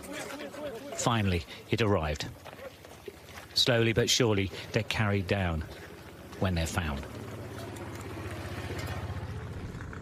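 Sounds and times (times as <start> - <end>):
engine running: 4.5 - 10.0.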